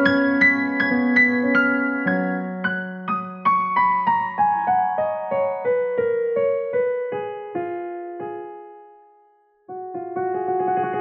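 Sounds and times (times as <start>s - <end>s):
digital piano soft melody: 0.0s - 11.0s.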